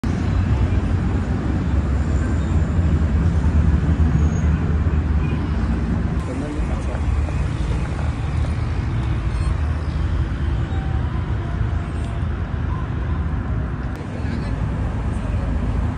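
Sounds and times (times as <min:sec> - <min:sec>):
road traffic rumble: 0:00.0 - 0:15.9.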